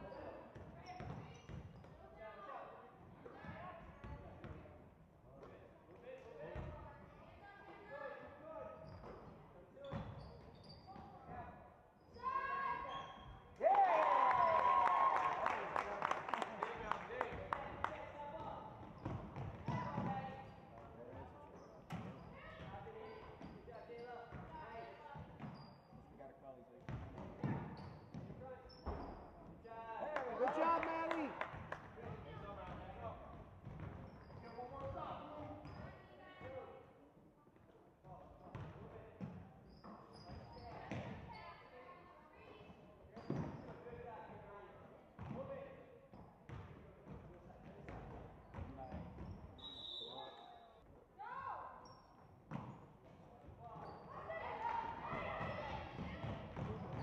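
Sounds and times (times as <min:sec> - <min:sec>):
voices of players and spectators: 0:00.0 - 0:57.0.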